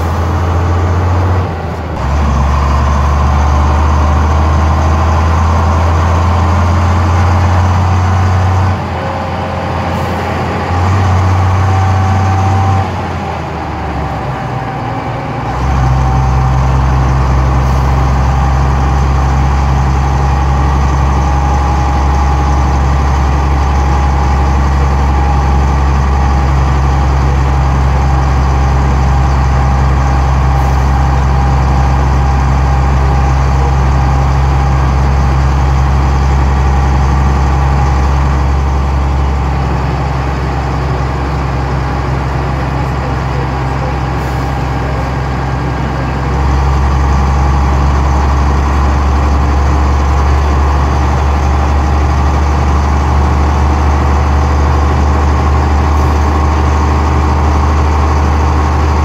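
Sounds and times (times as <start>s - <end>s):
bus diesel engine drone: 0.0s - 59.0s.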